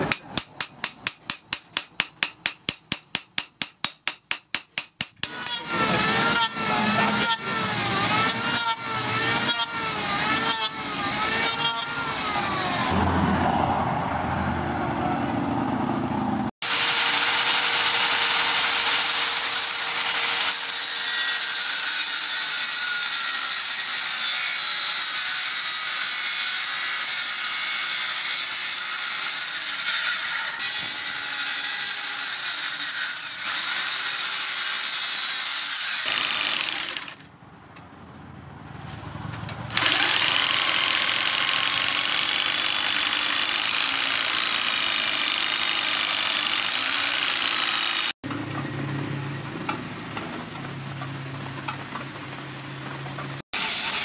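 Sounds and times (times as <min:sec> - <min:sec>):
circular saw cutting wood: 0:05.1 - 0:13.3, 0:16.6 - 0:37.2, 0:39.7 - 0:48.2, 0:53.5 - 0:54.0
electric planer shaving wood: 0:05.3 - 0:13.0, 0:16.6 - 0:37.2, 0:39.7 - 0:48.2.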